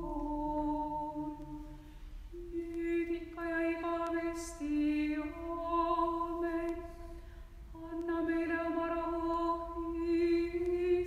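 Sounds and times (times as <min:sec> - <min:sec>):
woman singing chant unaccompanied: 0:00.0 - 0:11.0.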